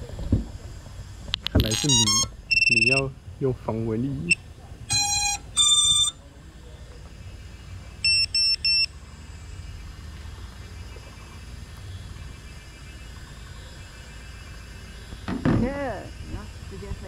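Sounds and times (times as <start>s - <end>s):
low steady rumble: 0.0s - 17.0s
short electronic beeps: 1.5s - 3.0s, 4.3s - 6.2s, 8.0s - 8.9s.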